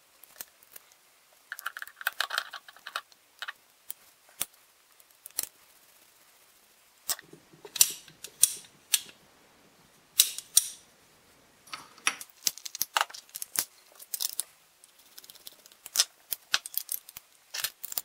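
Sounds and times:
metallic clicks and knocks: 7.1 - 9.2.

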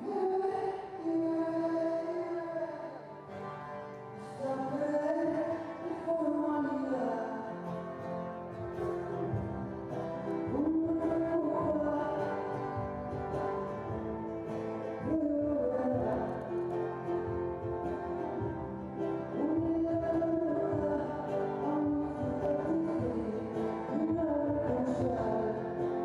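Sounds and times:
live band with guitar: 0.0 - 26.0
person singing: 0.0 - 26.0.

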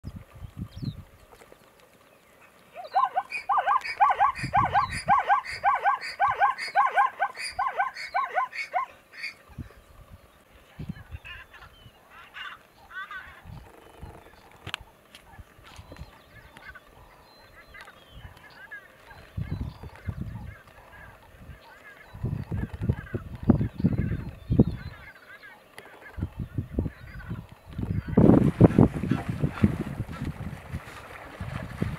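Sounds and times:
zebra barking: 2.8 - 9.4.

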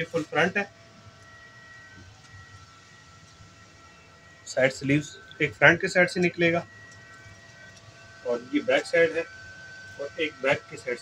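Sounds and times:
thin high steady tones: 0.0 - 11.0.

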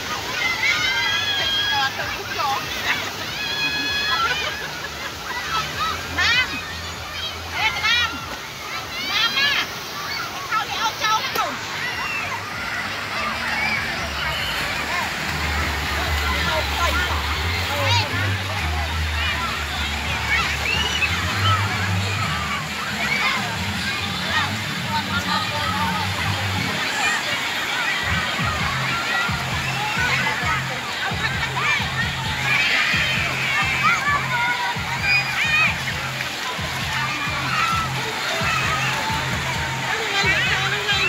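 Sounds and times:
children shouting: 0.0 - 41.0
water splashing and sloshing: 0.0 - 41.0.

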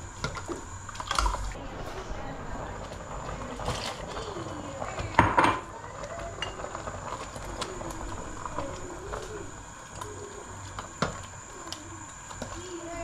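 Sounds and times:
pots and utensils clattering: 2.9 - 11.7.

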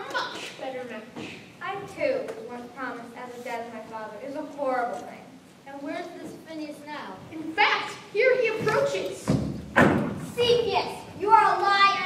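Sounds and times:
heavy thud: 9.2 - 10.4.

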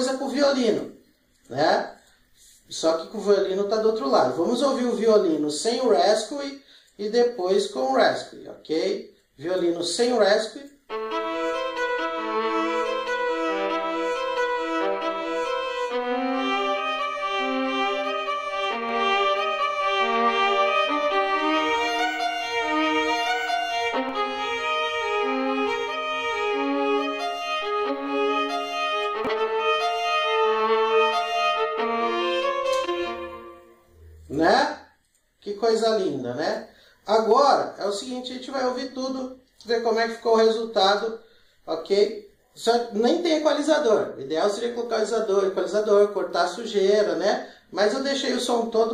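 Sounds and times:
slow bowed violin melody: 10.9 - 34.2.

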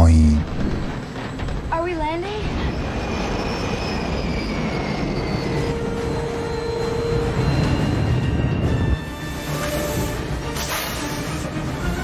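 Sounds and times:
jet airliner rumble and whine: 0.0 - 12.0.

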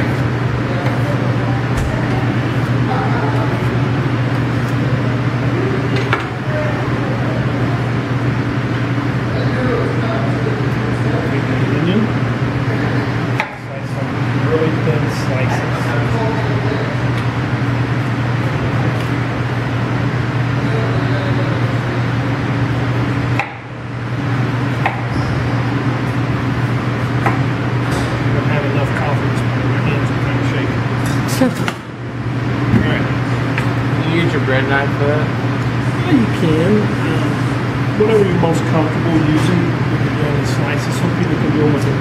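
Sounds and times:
faint voices: 0.0 - 8.5
steady low hum: 0.0 - 42.0.

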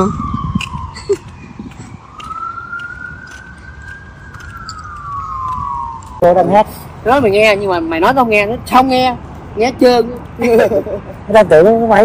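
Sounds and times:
distant siren wailing: 0.0 - 8.5.

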